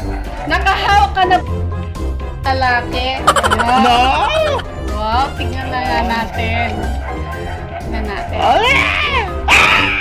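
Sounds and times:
women laughing: 3.3s - 4.7s.

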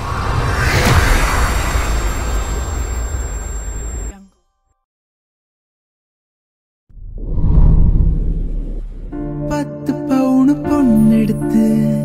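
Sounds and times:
deep noisy rumble: 7.0s - 9.6s.

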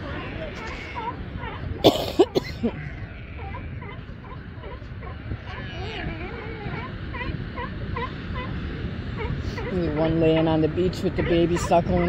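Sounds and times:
sea lion pups calling: 0.0s - 12.0s
person coughing: 1.8s - 2.7s.

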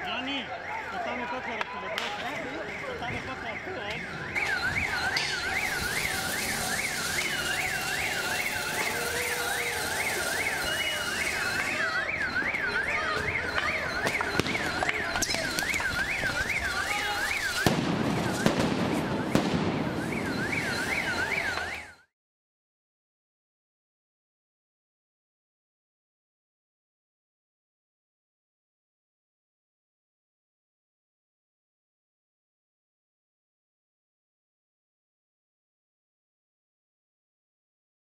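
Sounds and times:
electronic siren wailing: 0.0s - 22.1s
street noise: 0.0s - 22.1s
sharp bangs: 13.2s - 21.8s.

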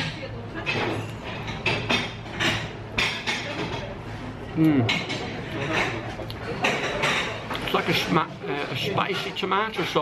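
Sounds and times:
background chatter: 0.0s - 10.0s.

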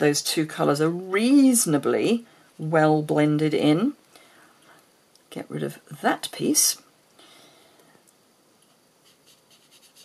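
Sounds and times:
foam sponge scratching on card: 9.0s - 10.0s.

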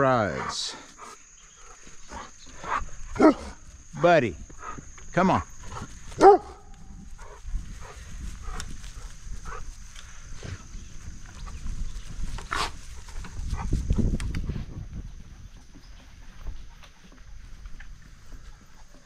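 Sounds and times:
dogs yipping: 6.2s - 7.4s.

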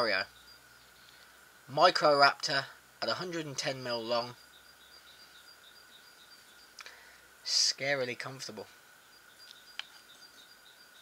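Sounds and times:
faint high chirps: 0.0s - 1.8s, 3.2s - 11.0s.

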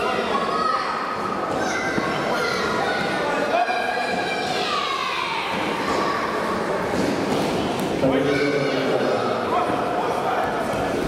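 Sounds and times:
children shouting in a hall: 0.0s - 6.6s.

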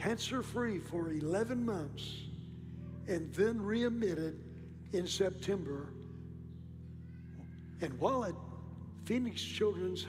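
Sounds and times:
man's voice: 0.0s - 2.4s, 3.1s - 6.1s, 7.8s - 10.0s.

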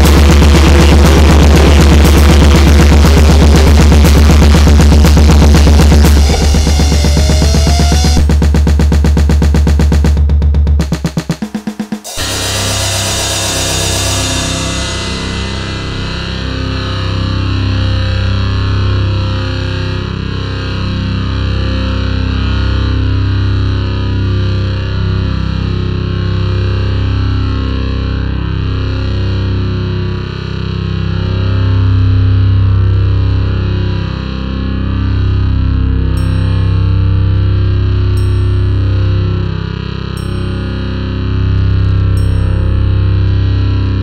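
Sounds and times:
distorted electric guitar chords: 0.0s - 44.0s.

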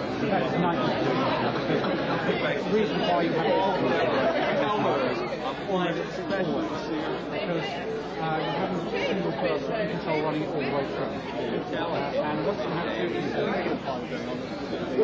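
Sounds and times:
hubbub of overlapping conversation: 0.0s - 15.0s.

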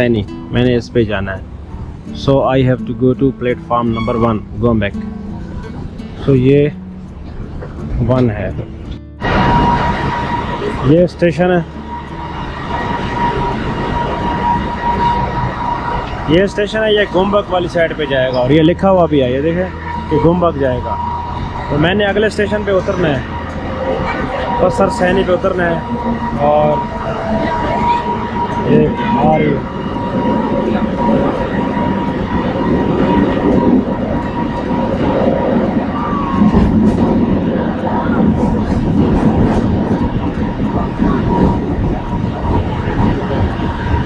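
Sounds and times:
thin high tone: 0.0s - 7.0s, 8.1s - 38.6s
train rumbling: 0.0s - 44.0s
faint high whine: 8.9s - 44.0s.

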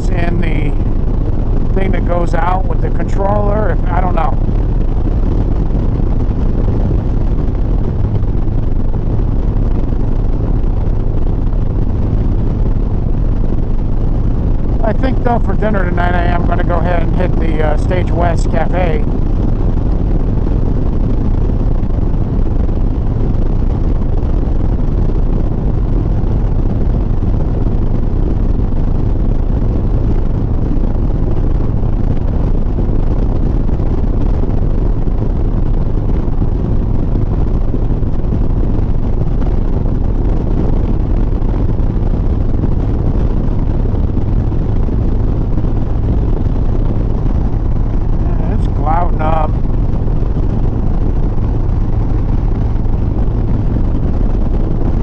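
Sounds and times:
wind rush on microphone: 0.0s - 55.0s.

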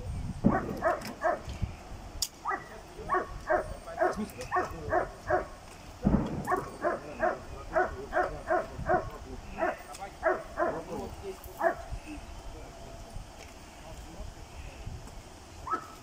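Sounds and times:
dog barking: 0.5s - 1.5s, 2.4s - 5.6s, 6.4s - 11.9s, 15.6s - 16.0s.

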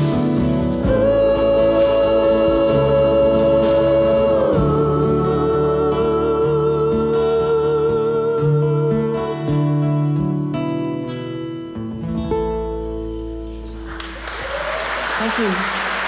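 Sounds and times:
acoustic guitar and band: 0.0s - 16.0s
audience applause: 13.8s - 16.0s.

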